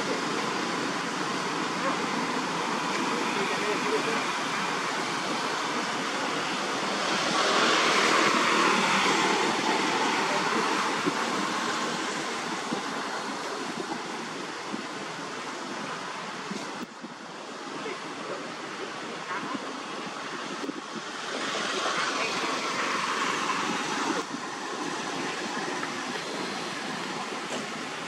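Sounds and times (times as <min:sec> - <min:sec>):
outdoor rushing noise: 0:00.0 - 0:28.0.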